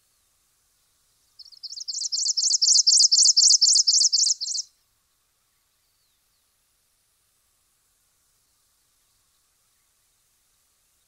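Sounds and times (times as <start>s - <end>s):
finch high chirping song: 1.4s - 4.7s.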